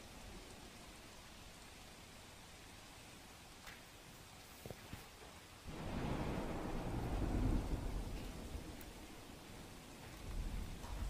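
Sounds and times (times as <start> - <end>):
rain: 0.0 - 11.0
thunder rumble: 5.6 - 11.0.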